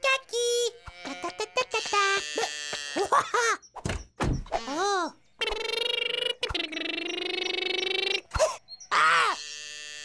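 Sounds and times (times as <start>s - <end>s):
cartoon chick grunting calls: 4.6s - 9.4s.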